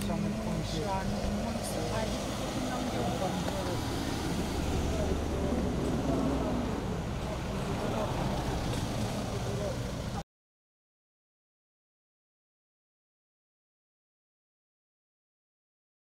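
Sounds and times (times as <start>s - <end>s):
engines humming: 0.0s - 10.2s
indistinct voices: 0.0s - 10.2s.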